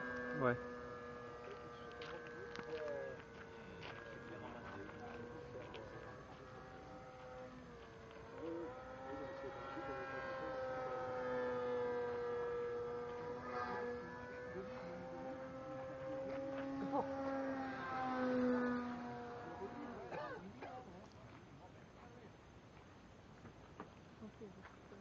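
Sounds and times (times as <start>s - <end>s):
model airplane motor buzzing: 0.0s - 21.1s.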